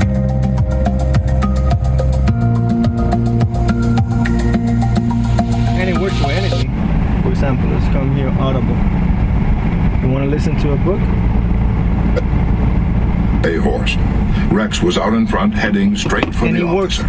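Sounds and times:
music through car stereo: 0:00.0 - 0:06.6
low cabin rumble: 0:00.0 - 0:17.0.

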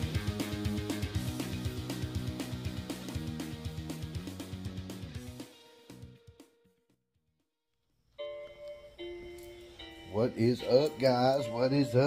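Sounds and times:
intro music sustained notes: 0:08.3 - 0:12.0.

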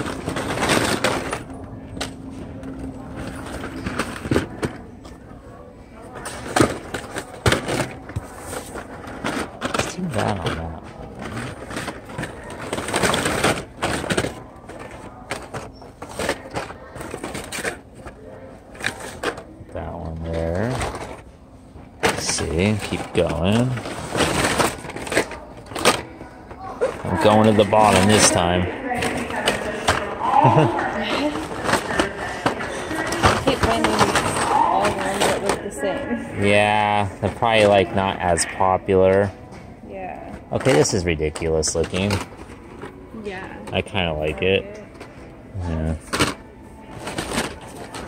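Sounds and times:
plastic packaging rustling: 0:00.0 - 0:01.6, 0:06.0 - 0:21.3, 0:22.0 - 0:39.2, 0:40.4 - 0:43.0, 0:43.7 - 0:48.0
plastic packs clacking: 0:00.0 - 0:05.2, 0:06.0 - 0:21.3, 0:22.0 - 0:39.3, 0:40.4 - 0:43.0, 0:43.6 - 0:48.0.

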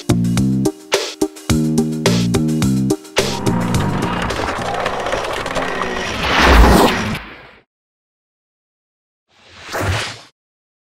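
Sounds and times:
low rumble: 0:03.2 - 0:07.2
whoosh: 0:03.2 - 0:07.6.

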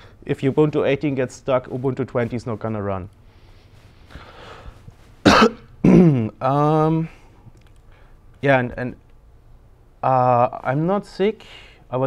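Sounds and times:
man coughing: 0:05.2 - 0:06.4.

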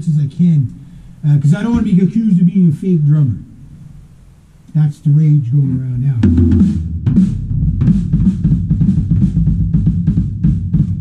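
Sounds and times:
snare or cymbal hits: 0:01.4 - 0:02.5
fast kick drum strokes: 0:01.4 - 0:02.8, 0:06.0 - 0:11.0.

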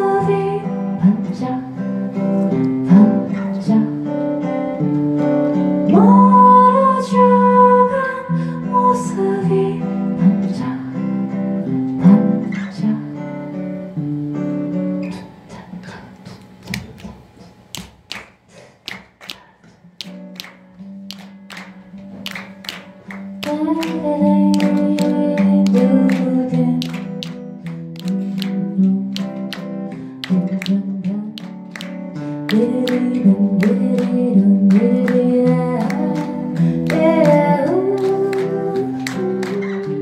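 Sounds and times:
woman singing: 0:00.0 - 0:04.7, 0:05.8 - 0:11.3, 0:12.0 - 0:13.5, 0:23.3 - 0:27.4, 0:30.2 - 0:31.6, 0:32.3 - 0:40.0
acoustic guitar strumming: 0:00.0 - 0:18.0, 0:19.3 - 0:40.0
sharp percussive taps: 0:16.6 - 0:37.4.

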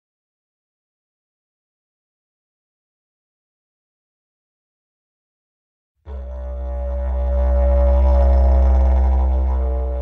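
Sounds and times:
didgeridoo drone: 0:06.1 - 0:10.0.

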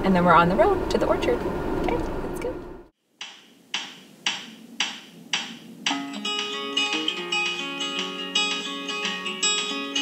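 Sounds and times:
low car cabin rumble: 0:00.0 - 0:02.9
music with sharp percussive hits: 0:03.2 - 0:06.7.

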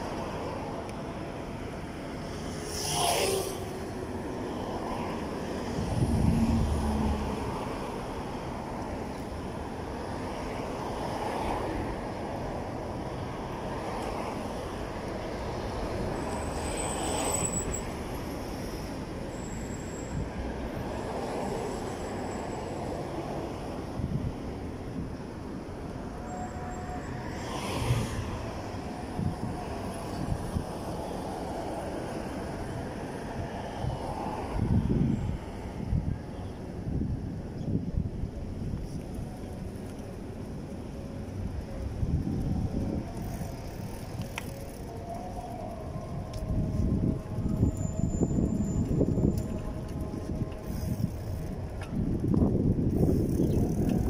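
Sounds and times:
rumble of road traffic: 0:00.0 - 0:54.0.

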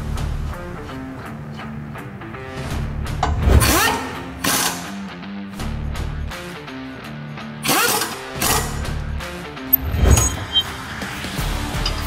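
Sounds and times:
background music: 0:00.0 - 0:12.0
impact wrench whirring: 0:07.6 - 0:08.8.

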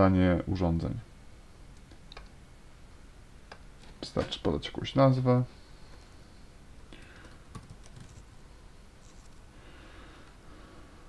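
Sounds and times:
faint typing on keyboard: 0:06.9 - 0:08.3, 0:09.0 - 0:09.4.

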